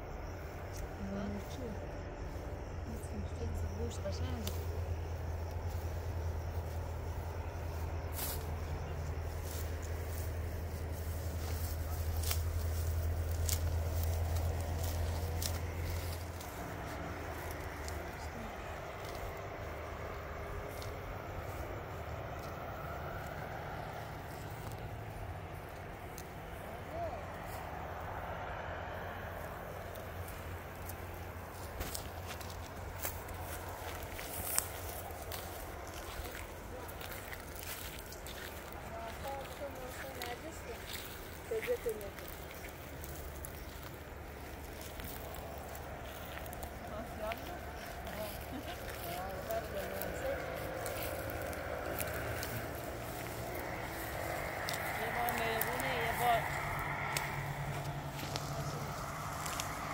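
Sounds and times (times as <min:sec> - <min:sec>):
low rumble: 0:42.2 - 0:59.9.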